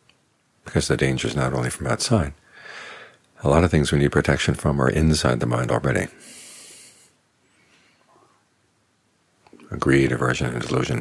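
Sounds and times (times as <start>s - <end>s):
man breathing in: 2.4s - 3.3s, 6.2s - 8.2s.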